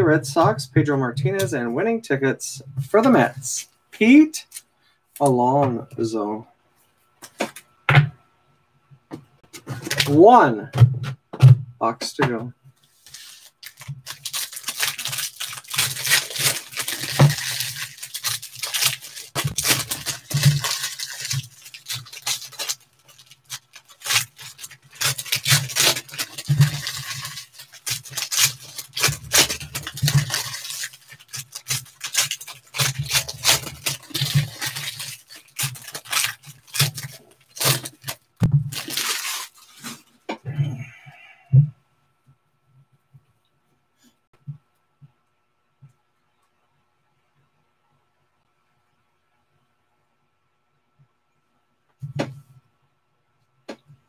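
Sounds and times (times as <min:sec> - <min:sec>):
foil wrappers crinkling and tearing: 0:09.7 - 0:10.2, 0:13.0 - 0:40.2.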